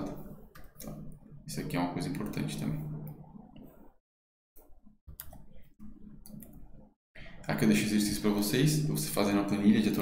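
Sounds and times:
low steady hum: 0:00.0 - 0:04.0.

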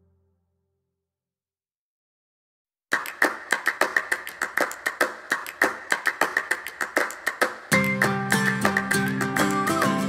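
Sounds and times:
fast percussive claps: 0:02.9 - 0:10.0.

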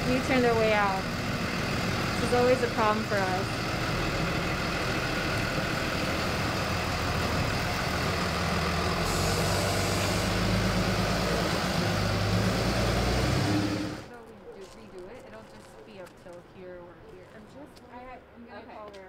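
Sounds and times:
truck engine running: 0:00.0 - 0:14.1.

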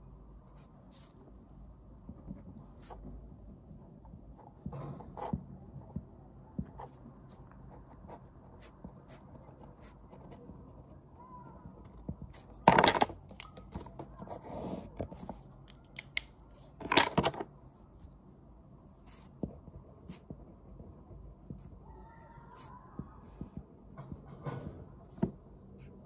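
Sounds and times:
pen scratching on paper: 0:02.0 - 0:03.3, 0:04.3 - 0:11.0, 0:18.9 - 0:21.8, 0:22.6 - 0:23.6.

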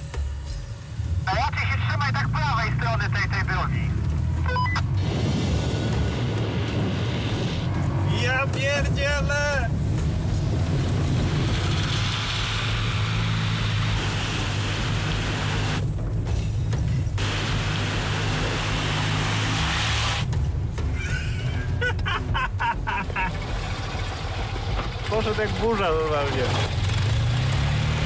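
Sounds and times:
background music: 0:00.0 - 0:28.0
water spraying up: 0:17.2 - 0:20.3.

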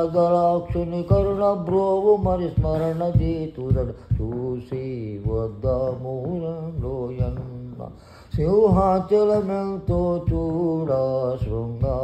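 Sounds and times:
man singing chant-like song: 0:00.0 - 0:12.0.

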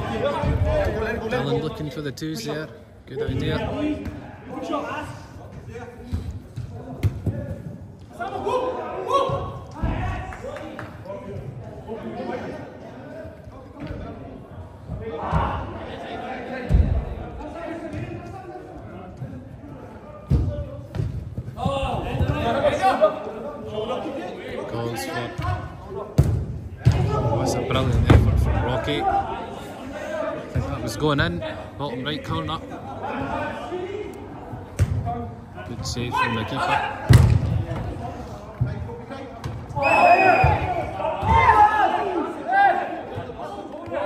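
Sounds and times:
players shouting: 0:39.7 - 0:44.0.

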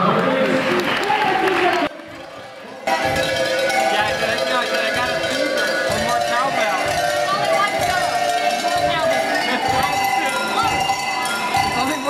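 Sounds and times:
cowbells ringing tune: 0:02.2 - 0:12.0.

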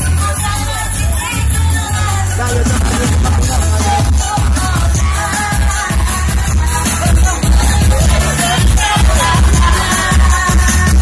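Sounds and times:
pop dance music with heavy bass: 0:00.0 - 0:11.0.

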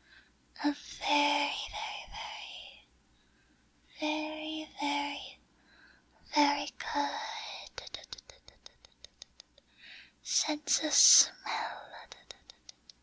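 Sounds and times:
woman whispering: 0:00.6 - 0:02.8, 0:04.0 - 0:05.4, 0:06.3 - 0:08.9, 0:10.2 - 0:12.7.

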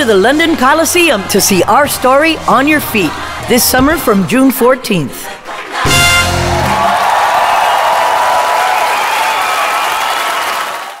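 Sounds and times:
audience applauding and cheering: 0:05.4 - 0:11.0.

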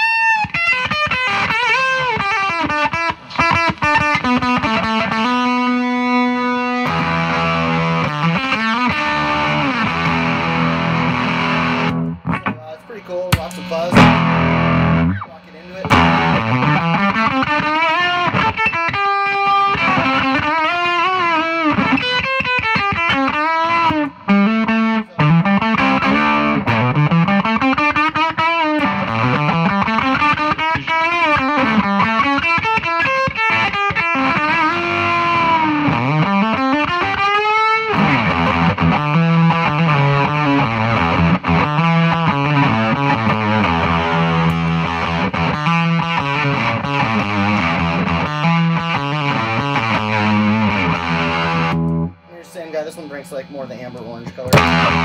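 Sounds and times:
fuzzy electric guitar: 0:00.0 - 0:55.0.

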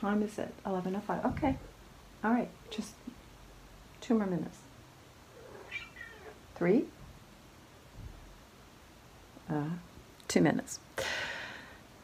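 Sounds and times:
cat meowing: 0:05.4 - 0:06.4.

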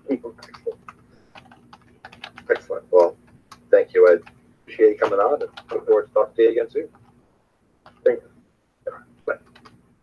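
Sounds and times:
keyboard typing: 0:00.1 - 0:07.2, 0:07.8 - 0:08.2, 0:09.2 - 0:09.9.

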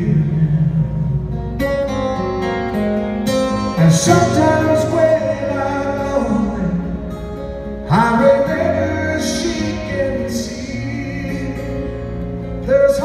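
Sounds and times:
acoustic guitar picking: 0:00.0 - 0:13.0.

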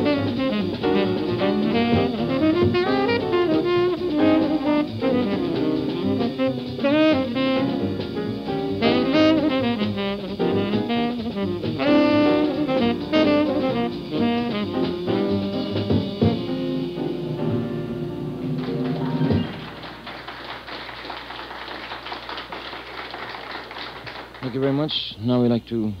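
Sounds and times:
saxophone: 0:00.0 - 0:20.7
drums: 0:00.0 - 0:24.8
audience applause: 0:18.4 - 0:24.9.

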